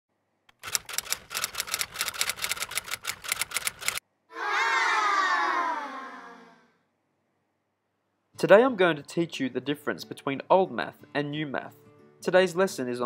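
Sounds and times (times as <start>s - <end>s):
rapid sharp clicks: 0.5s - 4.0s.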